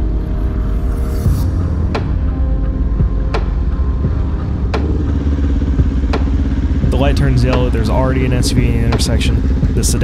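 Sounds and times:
background music with sharp hits: 0.0s - 10.0s
motorcycle engine idling: 3.0s - 10.0s.

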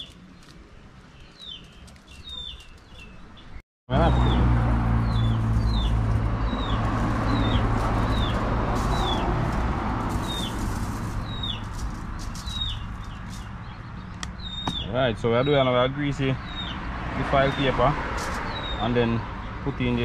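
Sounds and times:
broad rushing noise: 4.9s - 13.6s.

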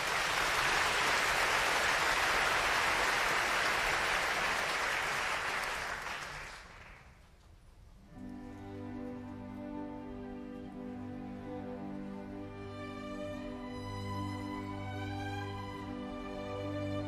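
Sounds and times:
audience applauding: 0.0s - 7.2s.

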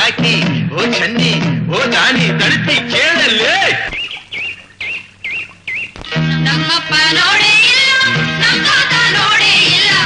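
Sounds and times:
bird whistling: 2.8s - 6.1s.

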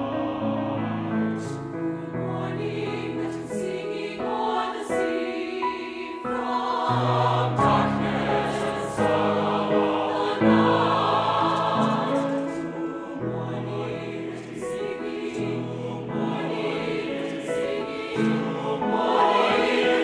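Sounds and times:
choir singing: 0.0s - 20.0s
piano: 0.0s - 20.0s.

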